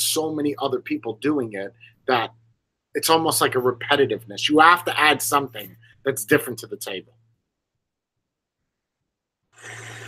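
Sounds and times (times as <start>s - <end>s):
airy hiss of vaping: 9.6s - 10.0s.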